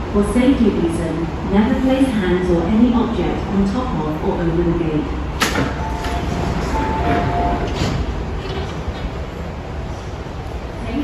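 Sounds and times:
low hum of stopped train: 0.0 - 11.0
train doors sliding open: 5.3 - 10.3.

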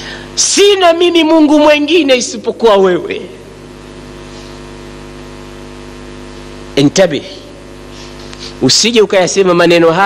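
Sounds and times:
steady stacked tones hum: 0.0 - 10.0.

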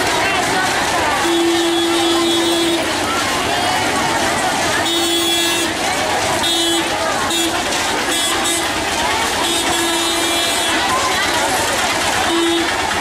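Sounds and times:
crowd of voices: 0.0 - 13.0
vehicle horn honking: 1.2 - 2.9, 4.8 - 5.8, 6.4 - 8.7, 9.4 - 10.9, 12.2 - 12.8.

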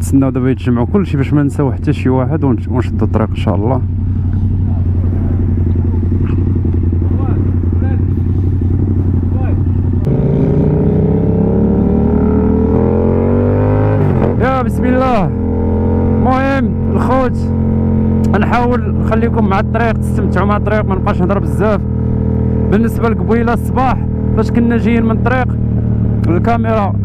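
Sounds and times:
motorcycle engine: 0.0 - 27.0.

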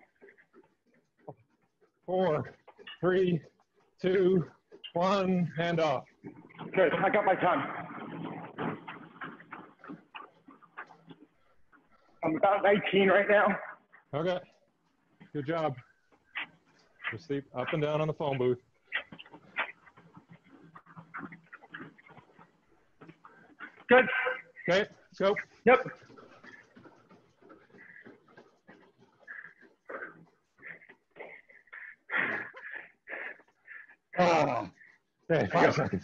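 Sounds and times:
faint running footfalls: 0.0 - 36.0.

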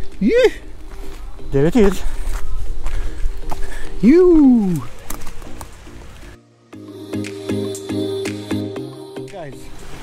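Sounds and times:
footsteps on rock: 0.0 - 6.3.

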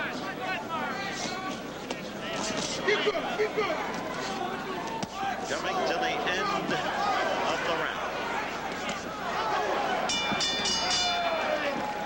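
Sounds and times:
crowd noise: 0.0 - 12.0
boxing ring bell: 10.0 - 11.7.

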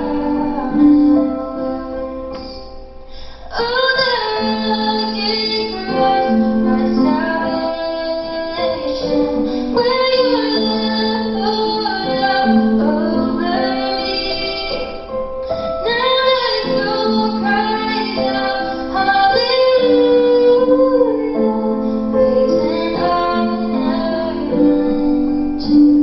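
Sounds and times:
quiet musical backing: 0.0 - 26.0
woman singing slow song: 0.0 - 26.0.

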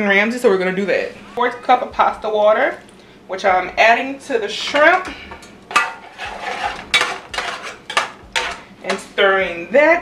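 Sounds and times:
utensil scraping frying pan: 4.5 - 9.2.

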